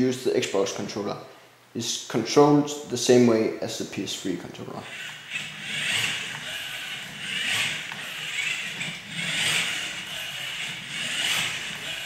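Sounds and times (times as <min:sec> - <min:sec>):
robot motors whirring: 0:04.8 - 0:12.0.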